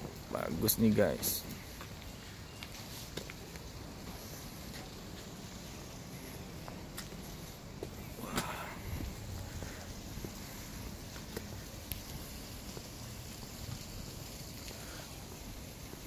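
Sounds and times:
footsteps on pavement: 0.0s - 16.0s
wind rumbling on microphone: 8.1s - 16.0s.

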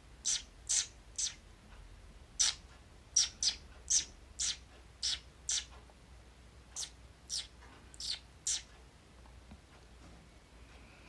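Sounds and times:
person chirping like a bird: 0.2s - 1.4s, 2.4s - 2.6s, 3.2s - 5.8s, 6.8s - 8.7s.

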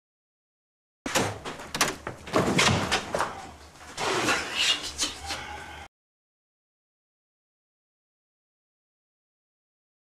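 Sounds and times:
door banging and rattling: 1.1s - 3.7s.

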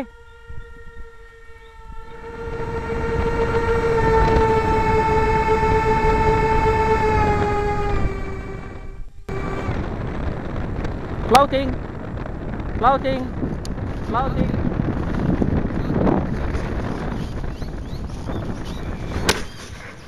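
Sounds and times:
model jet fans whining: 0.0s - 19.8s.

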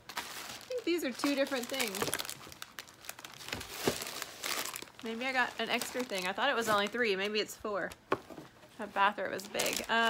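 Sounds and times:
crinkly packaging being handled: 0.0s - 8.0s, 8.9s - 10.0s.

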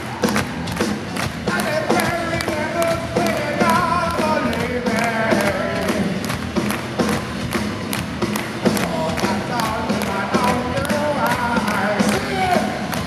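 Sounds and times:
crowd clapping along: 0.0s - 13.0s
rock band playing live: 0.0s - 13.0s.

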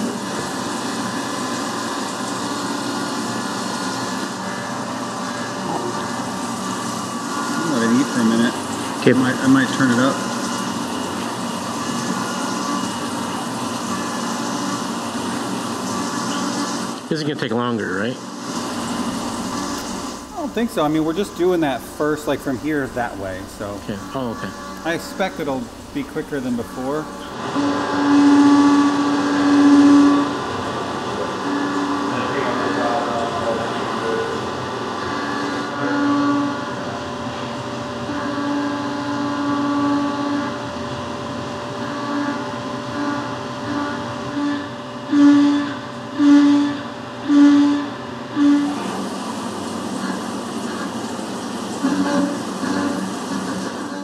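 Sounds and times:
cnc mill cutting hum: 0.0s - 54.0s
spindle running steadily: 0.0s - 54.0s.

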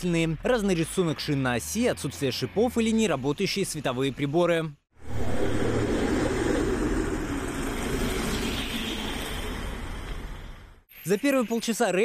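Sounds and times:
road noise: 5.0s - 10.9s.

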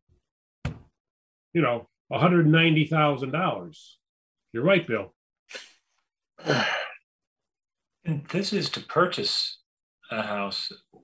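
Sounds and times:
person sighing: 6.4s - 7.0s.

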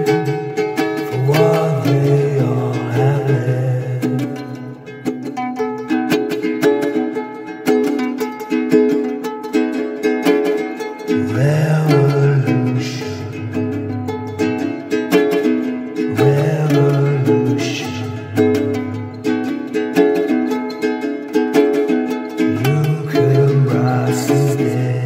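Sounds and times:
ukulele plucked notes: 0.0s - 25.0s.

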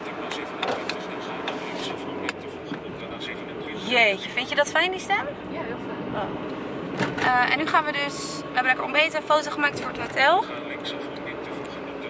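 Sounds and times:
car engine and tyre hum: 0.0s - 12.0s.

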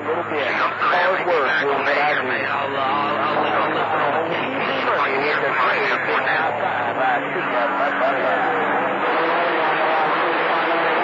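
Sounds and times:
steady low hum: 0.0s - 11.0s
voice over radio: 0.0s - 11.0s.

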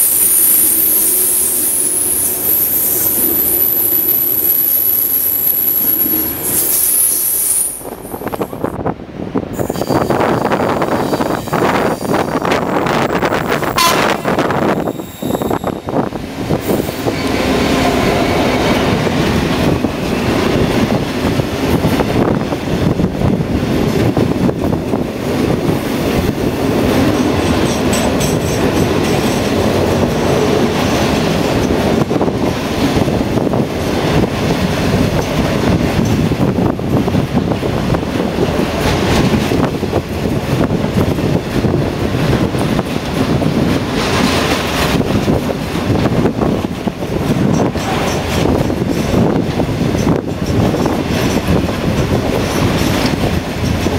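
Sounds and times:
diesel locomotive engine: 0.0s - 53.9s
train wagons clattering over rails: 0.0s - 53.9s.

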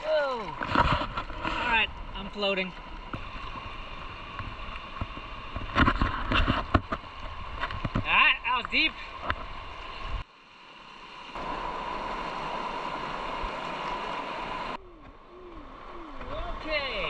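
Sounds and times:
river rapids rushing: 10.8s - 14.8s.

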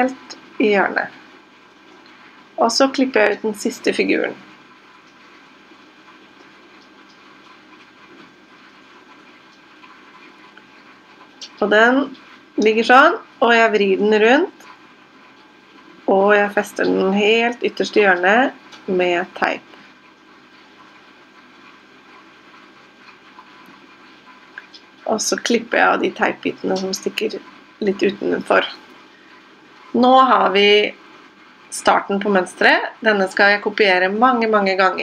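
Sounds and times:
low hiss: 0.0s - 35.0s.

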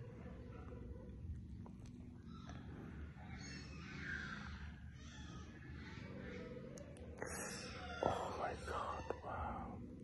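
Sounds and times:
person whispering: 7.2s - 9.9s.

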